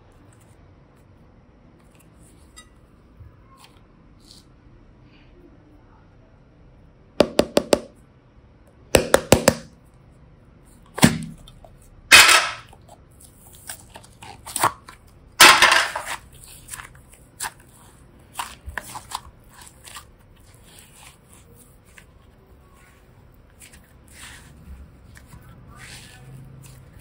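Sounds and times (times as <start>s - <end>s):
slime crackling: 16.0s - 27.0s.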